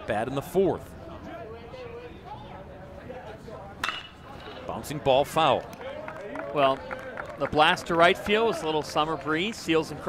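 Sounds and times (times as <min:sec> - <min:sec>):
crowd murmur: 0:00.0 - 0:10.0
metal bat striking ball: 0:03.8 - 0:04.7.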